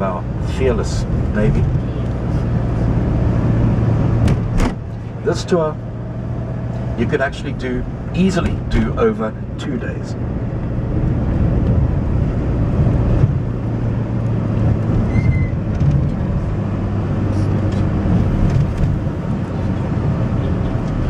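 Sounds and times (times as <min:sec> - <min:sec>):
vehicle engine and road hum: 0:00.0 - 0:21.0.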